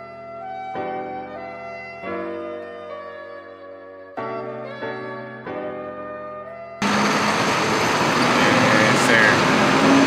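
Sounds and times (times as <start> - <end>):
truck engine and road noise: 6.8 - 10.0.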